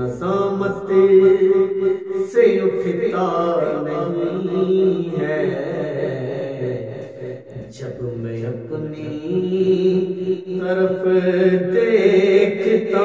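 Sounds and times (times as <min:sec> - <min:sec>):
man singing devotional song: 0:00.0 - 0:13.0.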